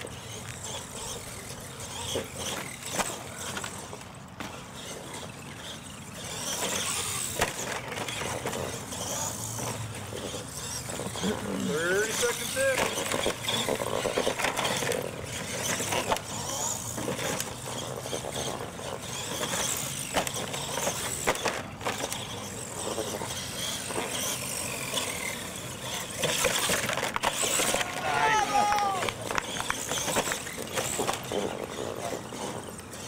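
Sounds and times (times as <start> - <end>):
toy truck motor whining: 0.0 - 33.0.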